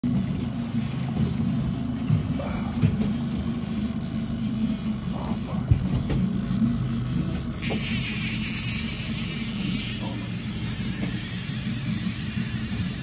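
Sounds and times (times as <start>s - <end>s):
outboard boat motor humming: 0.1s - 13.0s.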